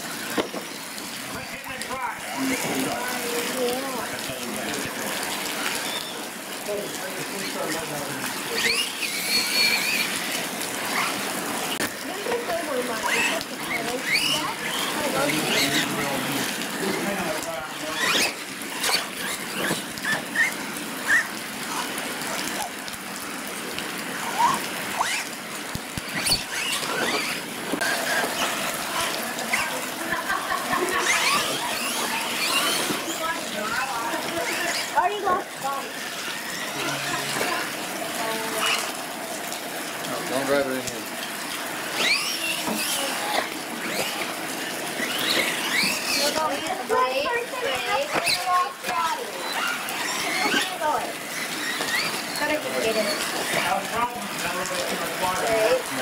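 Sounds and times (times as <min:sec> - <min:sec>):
steady hiss of rain: 0:00.0 - 0:56.0
toy truck motors whining: 0:07.4 - 0:17.2, 0:17.8 - 0:22.7, 0:24.2 - 0:25.3, 0:26.0 - 0:39.0, 0:41.7 - 0:54.0.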